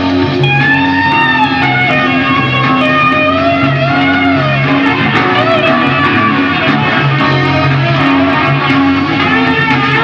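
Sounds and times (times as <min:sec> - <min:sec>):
bass guitar: 0:00.0 - 0:10.0
electric guitar bending notes: 0:00.0 - 0:10.0
rock band playing live: 0:00.0 - 0:10.0.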